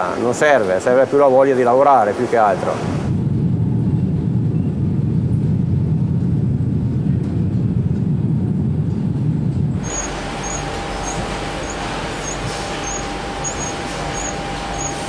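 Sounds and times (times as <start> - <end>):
factory machinery rumbling: 0.0 - 15.0
hissy machine noise: 8.9 - 15.0
faint high chirp: 9.8 - 15.0.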